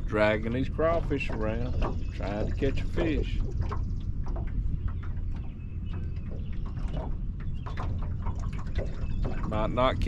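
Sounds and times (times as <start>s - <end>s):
water splashing against hull: 0.0s - 10.0s
wind rumble on microphone: 0.0s - 10.0s.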